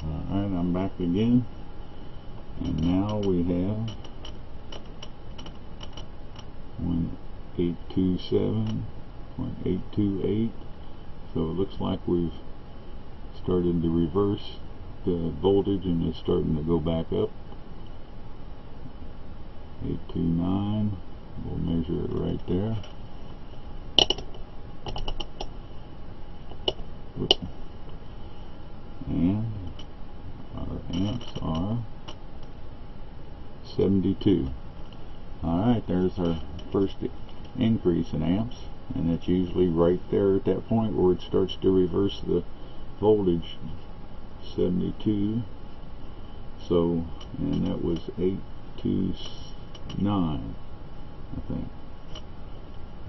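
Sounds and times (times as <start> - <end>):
steady background hiss: 0.0 - 53.0.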